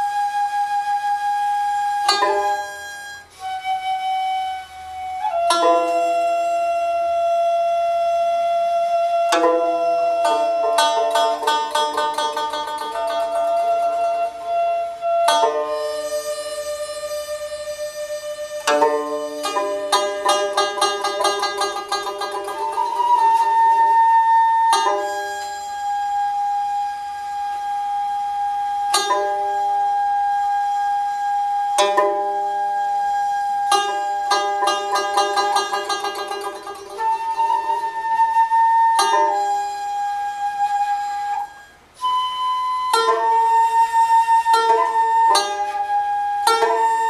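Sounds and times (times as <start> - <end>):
bamboo flute long note: 0.0 - 47.0
plucked string stroke: 2.1 - 3.2, 5.4 - 6.6, 9.3 - 17.8, 18.6 - 26.4, 28.9 - 29.7, 31.8 - 32.5, 33.7 - 40.0, 42.9 - 47.0.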